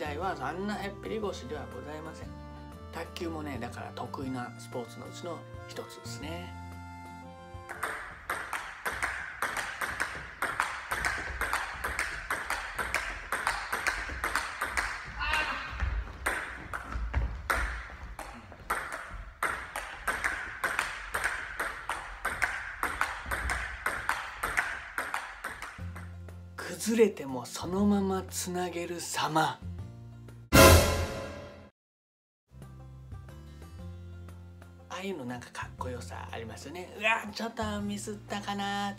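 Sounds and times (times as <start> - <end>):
table tennis ball clicking: 7.7 - 15.0, 18.7 - 26.1.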